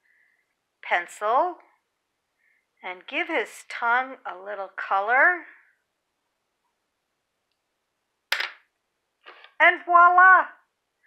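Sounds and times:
pencil clacking on wooden table: 0:08.3 - 0:08.7.

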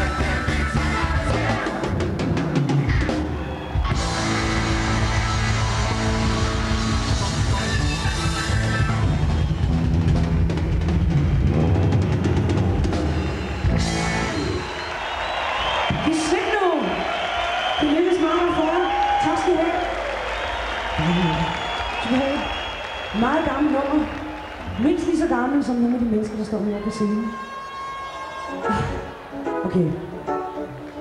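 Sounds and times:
live rock band playing: 0:00.0 - 0:15.0, 0:28.4 - 0:31.0.

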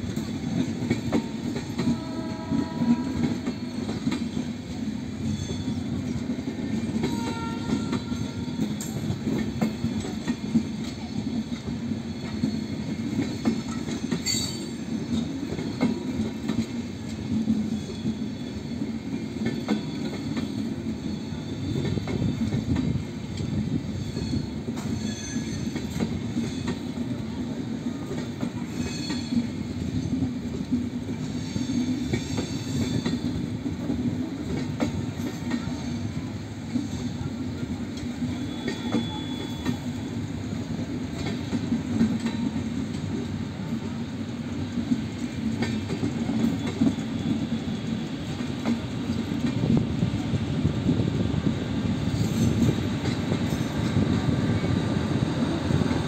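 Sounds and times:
train wheels rumbling on rails: 0:00.0 - 0:56.0
faint wheel squeals: 0:38.3 - 0:40.0.

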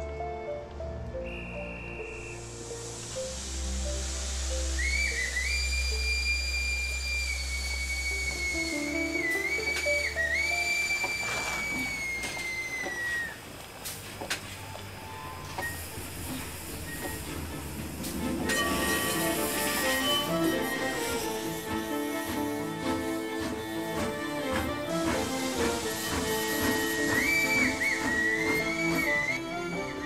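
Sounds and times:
background music: 0:00.0 - 0:30.0
steam locomotive whistle: 0:01.2 - 0:13.4, 0:18.4 - 0:30.0
steam hissing: 0:01.5 - 0:30.0.

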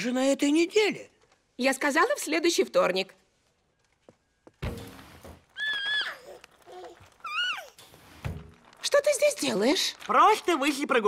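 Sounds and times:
thud: 0:04.6 - 0:05.4.

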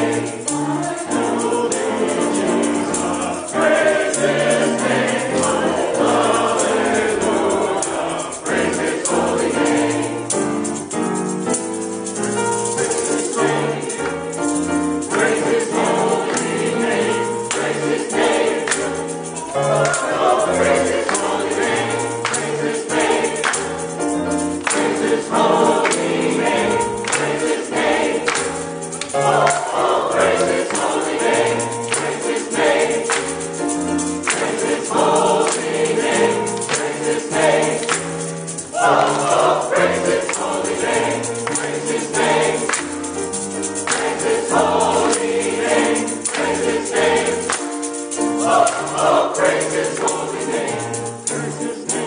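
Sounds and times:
choir singing gospel: 0:00.0 - 0:52.0
piano accompaniment: 0:00.0 - 0:52.0
tambourine rhythm: 0:00.0 - 0:52.0.

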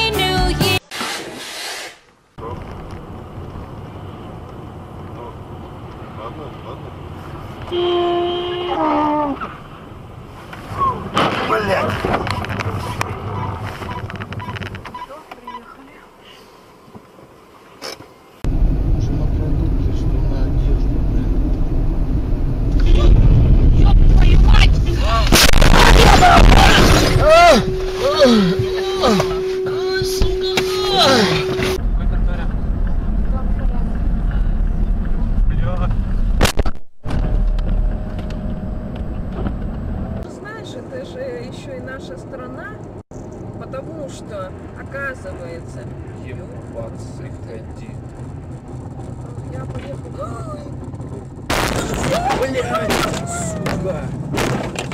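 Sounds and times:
car cabin and road rumble: 0:02.4 - 0:16.2, 0:16.8 - 0:54.9
steady held tone: 0:26.8 - 0:31.8
excited voices: 0:51.8 - 0:54.1.

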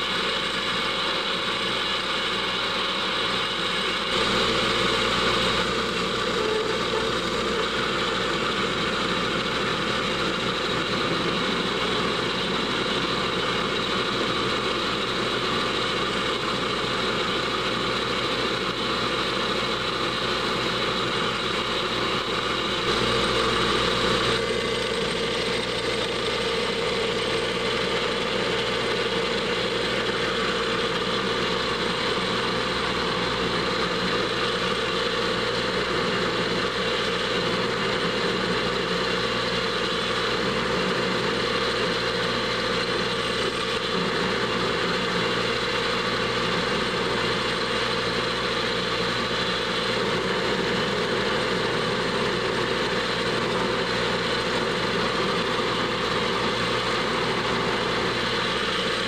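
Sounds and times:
metal lathe drilling: 0:00.0 - 0:59.0.

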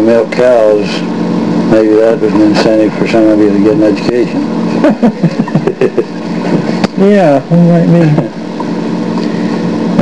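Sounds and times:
steady low hum: 0:00.0 - 0:10.0
people laughing: 0:04.7 - 0:06.8.

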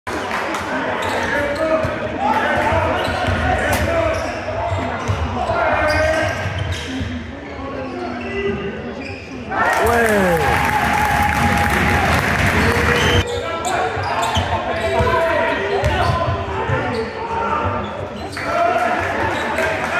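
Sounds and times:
spectators' voices echoing: 0:09.5 - 0:19.9
crowd cheering: 0:09.6 - 0:13.2.

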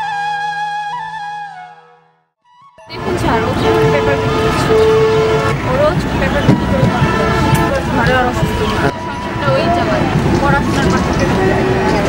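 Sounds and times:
vehicle traffic: 0:02.8 - 0:12.0
car horn blasts: 0:02.9 - 0:09.2
many voices: 0:02.9 - 0:12.0.

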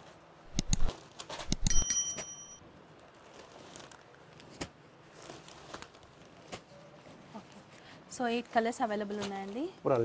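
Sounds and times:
sharp clicks: 0:00.5 - 0:02.0
bright bell ding: 0:01.5 - 0:02.6.

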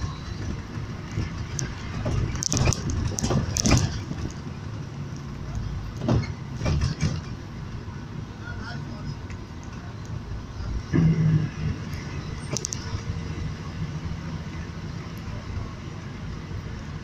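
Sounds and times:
vehicle road rumble: 0:00.0 - 0:17.0
clattering and knocking: 0:00.4 - 0:04.5, 0:06.0 - 0:07.5.

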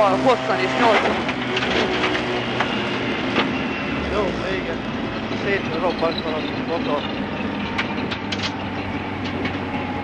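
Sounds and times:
car engine running: 0:00.0 - 0:10.0
road and tyre noise: 0:00.0 - 0:10.0
mechanical clatter: 0:05.3 - 0:09.9.

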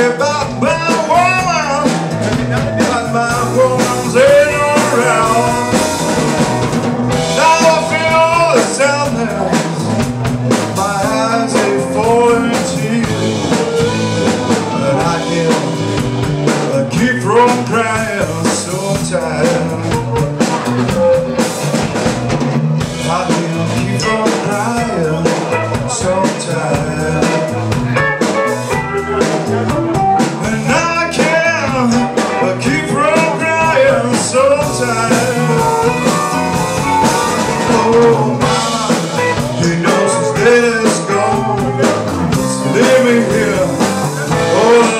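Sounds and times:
drum kit: 0:00.0 - 0:44.9
electric guitar: 0:00.0 - 0:44.9
amplified harmonica solo: 0:12.2 - 0:16.0, 0:34.8 - 0:39.4.

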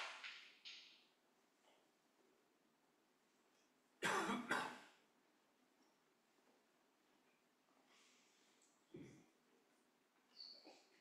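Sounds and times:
person coughing: 0:04.0 - 0:04.9.

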